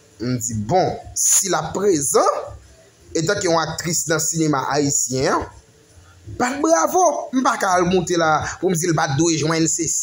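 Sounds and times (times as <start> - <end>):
man speaking in sing-song: 6.4 - 10.0.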